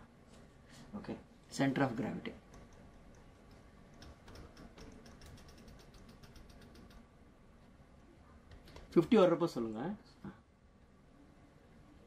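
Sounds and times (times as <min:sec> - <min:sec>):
stylus tapping on tablet screen: 0:02.5 - 0:07.0.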